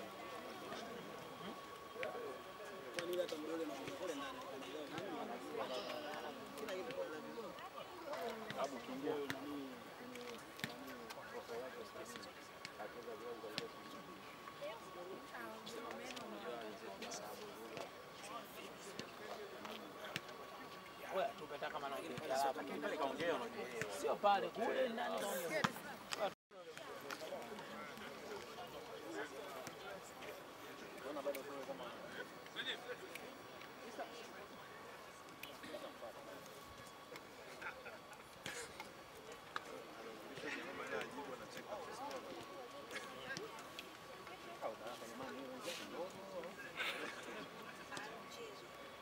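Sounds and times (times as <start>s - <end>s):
men chattering and calling out: 27.0s - 49.0s.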